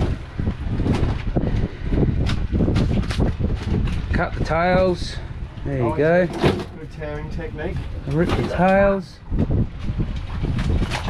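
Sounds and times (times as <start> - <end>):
low rumble of wind and boat: 0.0 - 11.0.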